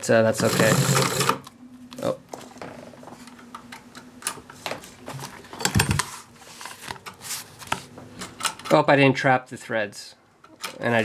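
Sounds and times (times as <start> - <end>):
vinyl rustling: 4.4 - 8.4.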